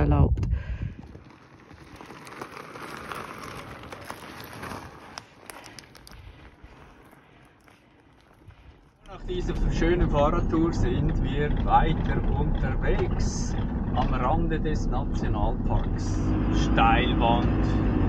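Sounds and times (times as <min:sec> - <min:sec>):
vehicle engine and road noise: 0:00.0 - 0:18.0
bicycle tyres crunching on gravel: 0:00.6 - 0:17.4.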